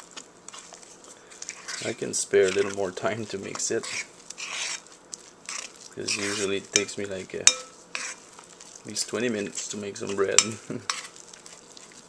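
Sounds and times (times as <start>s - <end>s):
spoon scraping dough in bowl: 0.5s - 12.0s.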